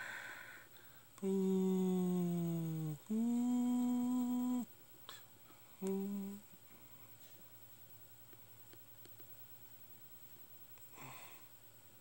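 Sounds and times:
person humming: 1.2s - 6.6s.

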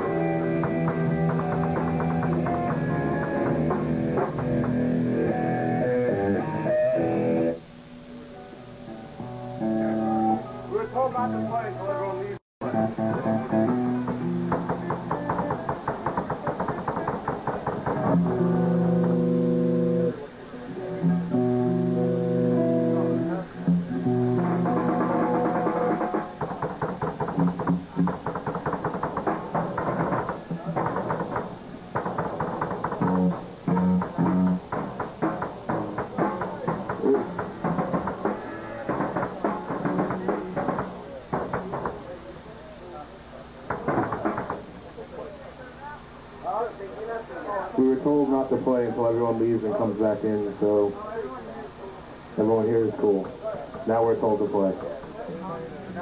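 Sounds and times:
drums playing: 0.0s - 5.5s, 12.7s - 20.1s, 23.0s - 42.0s, 43.7s - 44.6s
electric guitar playing: 0.0s - 7.6s, 8.4s - 11.9s, 12.6s - 15.4s, 18.0s - 26.3s, 33.0s - 41.0s.

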